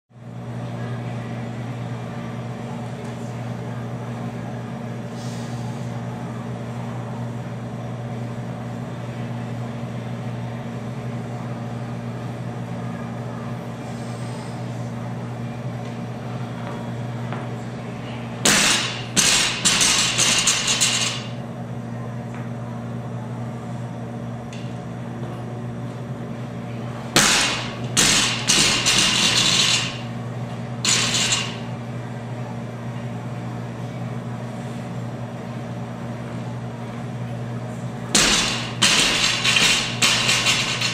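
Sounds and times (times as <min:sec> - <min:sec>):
steady low hum: 0:00.2 - 0:40.9.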